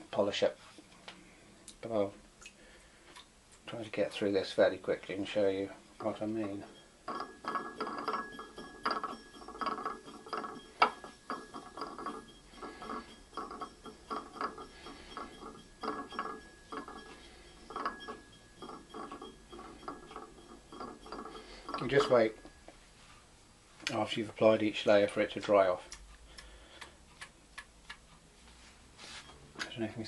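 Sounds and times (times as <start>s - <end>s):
banding wheel bearing rattling: 5.9s - 22.7s.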